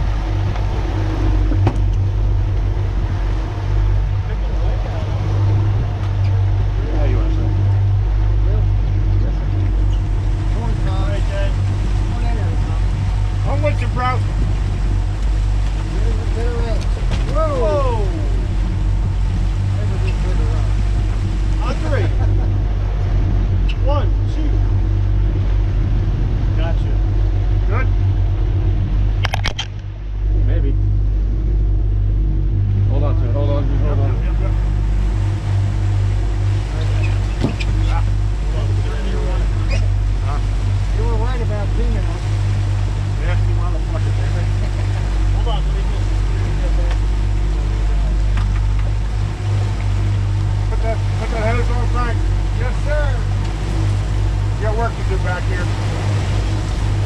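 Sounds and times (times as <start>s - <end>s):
outboard motors droning: 0.0s - 57.0s
wind and water rushing: 0.0s - 57.0s.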